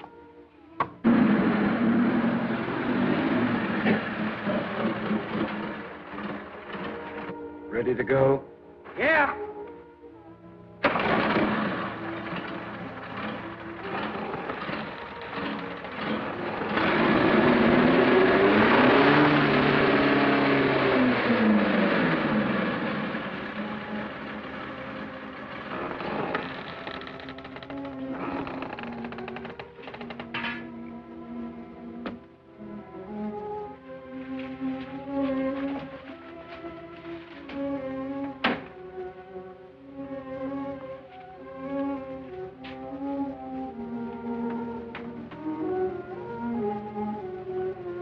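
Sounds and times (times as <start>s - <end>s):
film soundtrack music: 0.0s - 48.0s
motorcycle engine revving: 1.0s - 7.4s, 10.8s - 30.7s.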